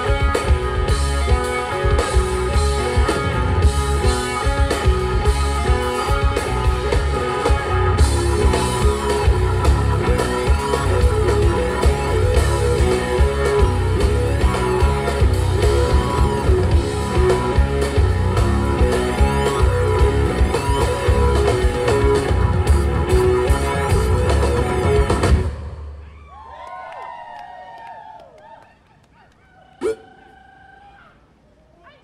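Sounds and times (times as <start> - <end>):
live rock band playing: 0.0 - 26.0
faint crowd whoops: 26.0 - 28.9.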